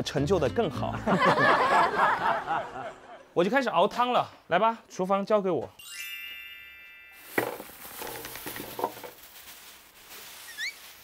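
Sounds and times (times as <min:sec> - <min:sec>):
bright glockenspiel-like chime: 0:05.8 - 0:07.4
faint rustling: 0:07.3 - 0:11.0.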